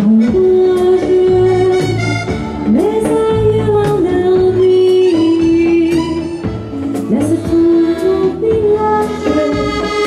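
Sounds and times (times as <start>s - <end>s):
live band playing: 0.0s - 10.0s
woman singing: 0.0s - 10.0s.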